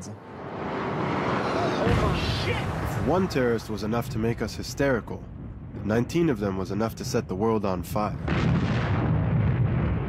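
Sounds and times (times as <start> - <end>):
explosion with deep rumbling boom: 1.9 - 6.1, 8.1 - 10.0.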